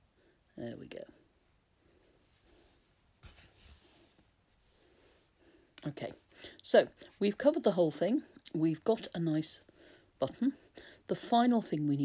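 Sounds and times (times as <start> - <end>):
faint thread rustle: 0.0 - 8.4.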